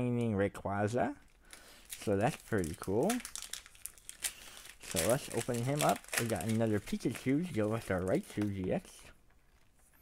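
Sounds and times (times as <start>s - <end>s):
foil wrapper crinkling: 1.2s - 9.7s.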